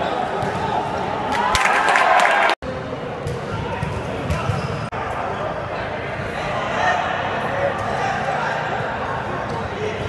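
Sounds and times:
players' voices: 0:00.0 - 0:10.0.

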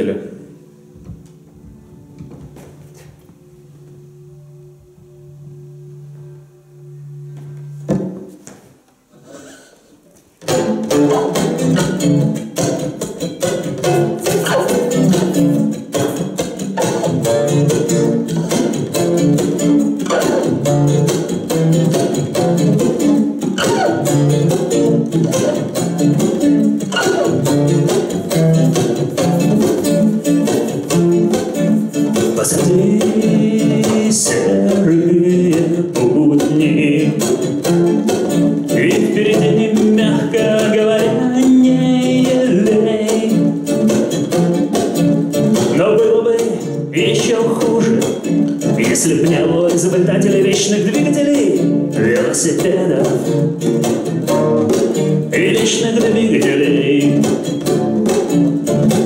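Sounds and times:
acoustic guitar being tuned: 0:00.0 - 0:59.0
acoustic guitar strumming: 0:10.4 - 0:59.0.

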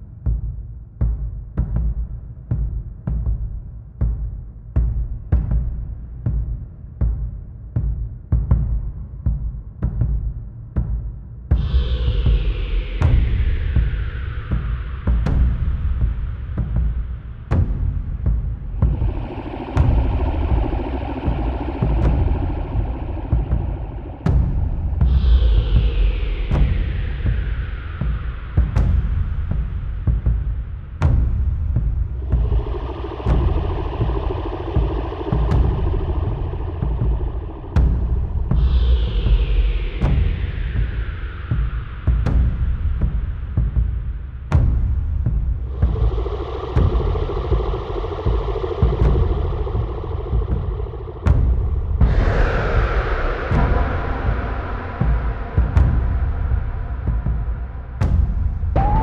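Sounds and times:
dark ambient electronic music: 0:00.0 - 0:59.0
deep rumbling drone: 0:11.5 - 0:59.0.

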